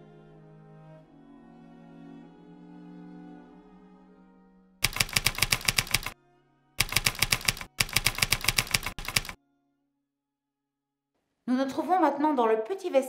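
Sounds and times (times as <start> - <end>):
orchestral string music: 0.0 - 4.8
typewriter keys clacking: 4.8 - 6.2, 6.8 - 9.4.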